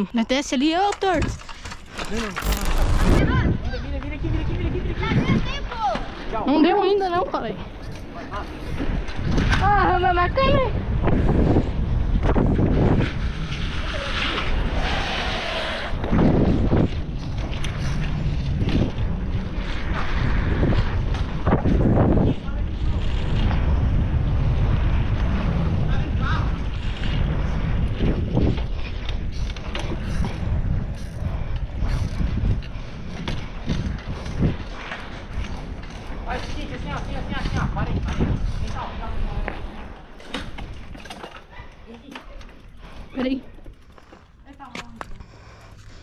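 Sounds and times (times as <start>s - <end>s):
low road rumble: 0.0s - 6.4s, 7.4s - 46.0s
wind buffeting microphone: 0.0s - 46.0s
bike knocks and rattles: 40.2s - 46.0s.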